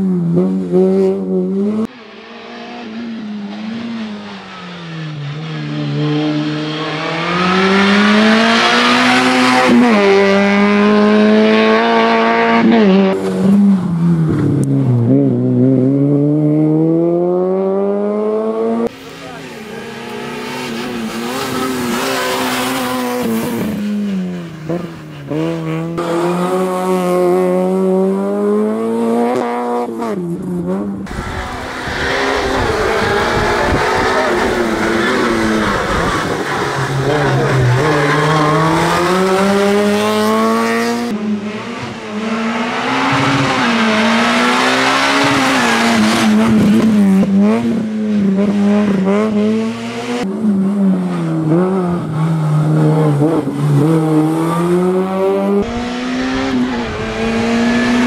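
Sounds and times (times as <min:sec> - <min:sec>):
car engine revving hard: 0:00.3 - 0:13.6, 0:14.3 - 0:58.0.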